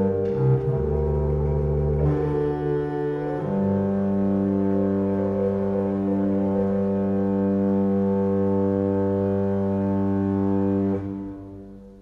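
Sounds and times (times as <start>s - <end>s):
pipe organ low chord: 0.0s - 12.0s.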